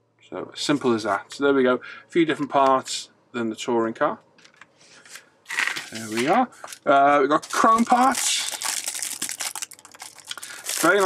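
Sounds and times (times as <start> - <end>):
plastic bag crinkling: 5.5 - 11.0.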